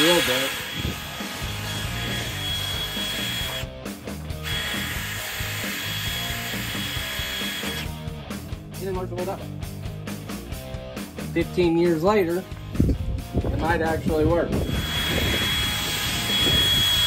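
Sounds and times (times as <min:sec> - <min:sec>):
cordless drill drilling steel: 0:00.0 - 0:08.0, 0:14.6 - 0:17.0.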